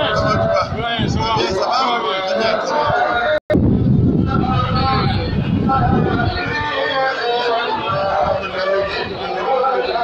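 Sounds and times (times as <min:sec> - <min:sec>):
indistinct voices: 0:00.0 - 0:10.0
steady low rumble: 0:03.5 - 0:06.4.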